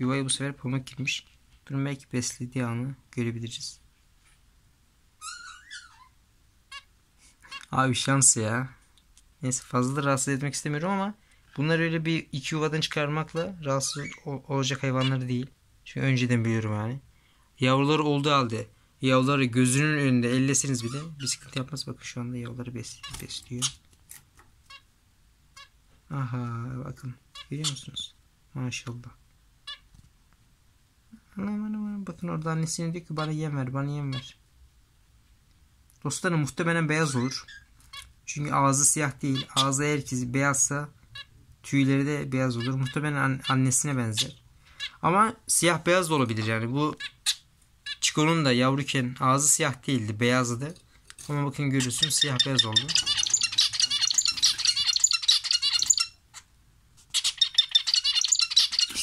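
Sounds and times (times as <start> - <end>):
finch high chirp: 5.2 - 6.9, 13.8 - 14.3, 51.8 - 56.4, 57.1 - 59.0.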